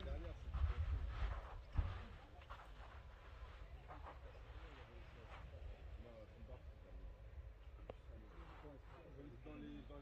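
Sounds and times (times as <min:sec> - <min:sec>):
wind noise on microphone: 0:00.0 - 0:02.1.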